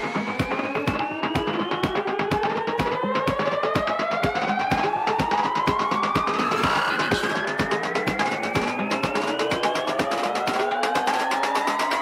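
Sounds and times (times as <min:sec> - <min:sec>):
electronic drum beat: 0:00.0 - 0:12.0
rising siren-like tone: 0:00.0 - 0:12.0.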